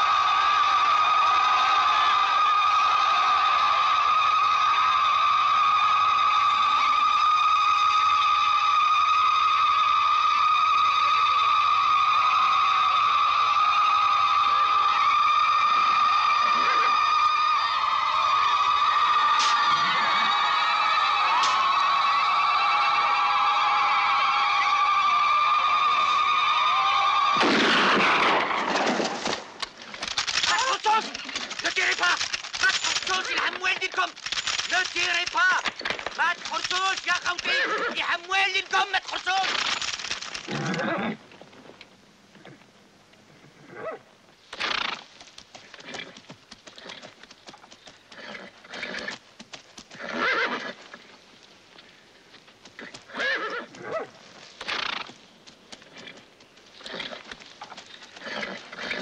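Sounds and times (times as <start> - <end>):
horses whinnying: 14.8 - 17.7, 19.4 - 20.6, 29.8 - 38.2, 39.5 - 41.3, 43.3 - 49.2, 49.9 - 51.2, 52.8 - 55.2, 55.8 - 59.0
men shouting and crying out: 30.4 - 40.1.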